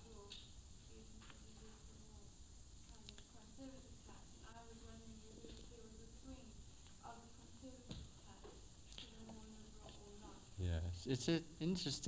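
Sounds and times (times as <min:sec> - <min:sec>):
tape hiss: 0:00.0 - 0:12.0
man speaking close to microphone: 0:10.6 - 0:12.0.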